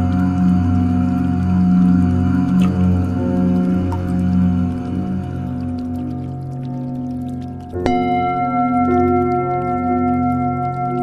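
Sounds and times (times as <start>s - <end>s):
steady ringing tone: 0.0s - 11.0s.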